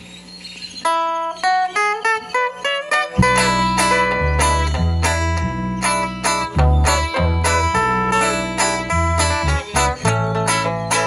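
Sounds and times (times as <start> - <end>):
strummed acoustic guitars: 0.8 - 11.0
picked melody: 0.9 - 11.0
bass line: 3.2 - 11.0.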